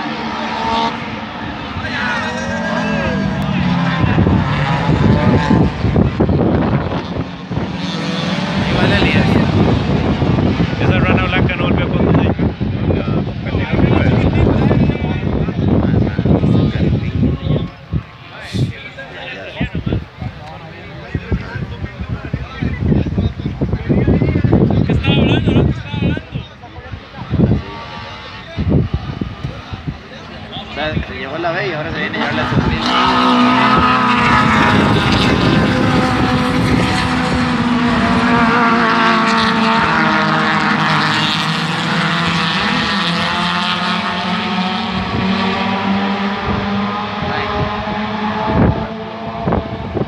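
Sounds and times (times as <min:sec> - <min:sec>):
indistinct voices: 0:00.0 - 0:10.0
race car engines running: 0:00.0 - 0:50.0
wind rumbling on microphone: 0:00.5 - 0:50.0.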